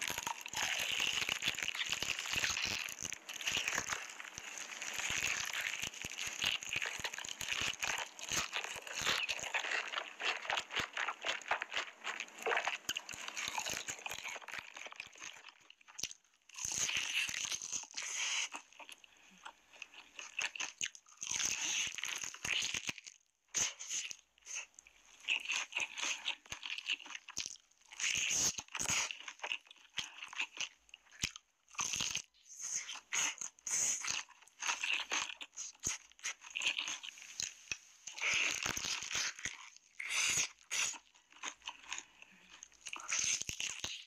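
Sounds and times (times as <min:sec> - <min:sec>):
crunching fried chicken: 0:00.0 - 0:44.0.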